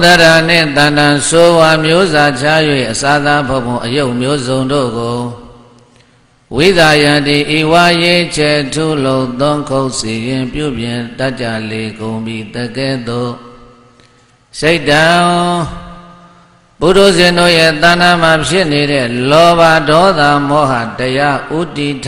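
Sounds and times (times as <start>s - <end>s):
man chanting: 0.0s - 5.8s, 6.5s - 13.9s, 14.5s - 22.0s.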